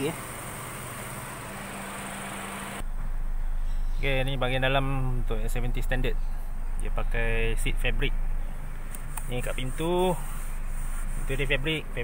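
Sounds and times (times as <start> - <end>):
faint mechanical hum: 0.0 - 12.0.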